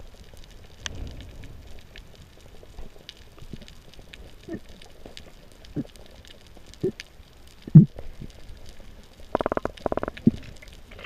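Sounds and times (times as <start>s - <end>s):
underwater rapid clicks: 9.3s - 10.7s.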